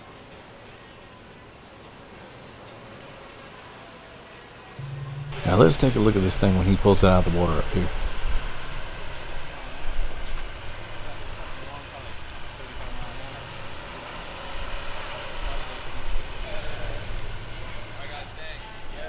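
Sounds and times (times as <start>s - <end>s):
truck engine rumbling: 4.8s - 19.0s
tyre and road noise: 4.8s - 19.0s.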